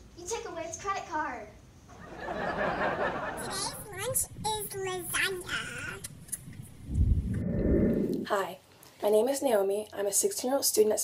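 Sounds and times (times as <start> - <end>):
child giggling: 2.8 - 4.2.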